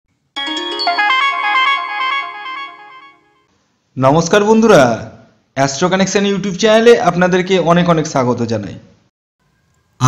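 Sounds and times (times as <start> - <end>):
electronic chime jingle: 0.4 - 3.5.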